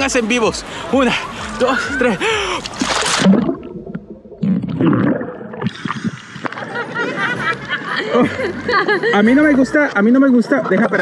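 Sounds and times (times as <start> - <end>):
water splashing and sloshing: 0.0 - 8.6
body splashing into water: 2.4 - 6.8.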